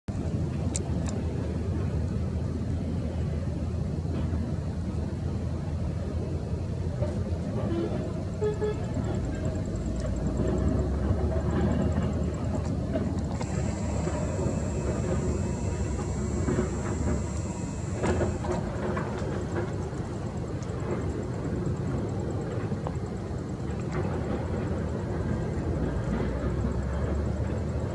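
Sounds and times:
steady low rumble: 0.1s - 27.9s
thin high whine: 7.0s - 27.9s.

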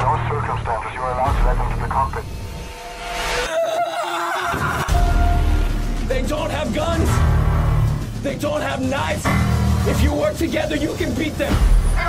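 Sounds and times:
man speaking: 0.0s - 2.3s
low steady drone: 0.0s - 3.5s.

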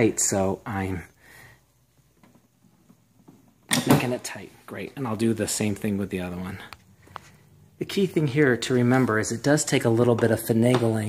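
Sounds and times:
man's voice: 3.9s - 6.8s, 7.8s - 11.0s.

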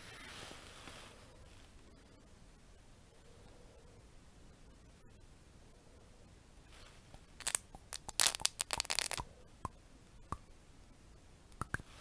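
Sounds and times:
crackling clicks and scrapes: 7.1s - 9.2s.

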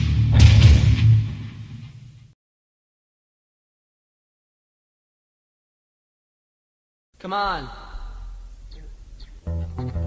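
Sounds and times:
sharp drum hit: 0.0s - 2.0s.

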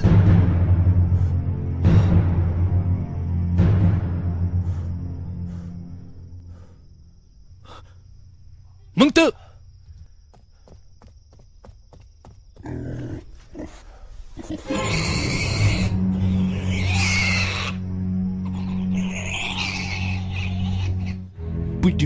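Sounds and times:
low music drone: 0.0s - 7.3s, 14.6s - 22.0s
man shouting: 9.0s - 9.4s
pig squealing loudly: 14.4s - 17.8s, 18.4s - 21.3s.

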